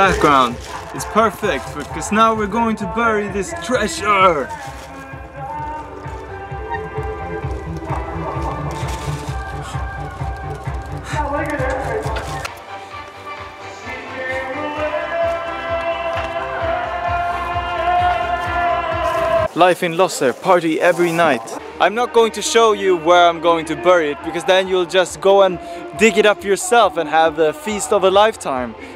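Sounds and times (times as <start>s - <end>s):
music with pulsing bass beat: 0.0s - 19.5s.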